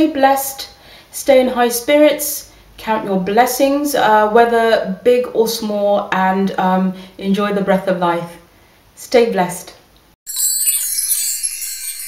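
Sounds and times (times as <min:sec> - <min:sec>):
shimmering twinkling chime: 0:10.3 - 0:12.0.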